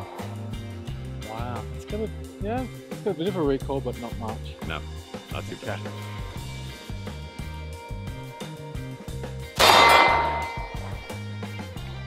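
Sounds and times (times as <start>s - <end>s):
background music with steady beat: 0.0s - 12.0s
pistol gunshot with ringing tail: 9.6s - 10.8s.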